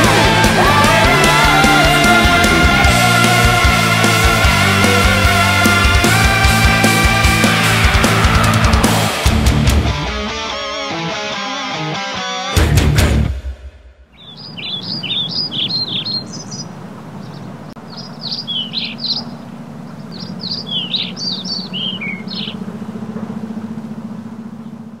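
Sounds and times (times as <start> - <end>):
loud band chord: 0.0 - 13.8
small birds chirping: 14.2 - 25.0
steady low hum: 16.0 - 25.0.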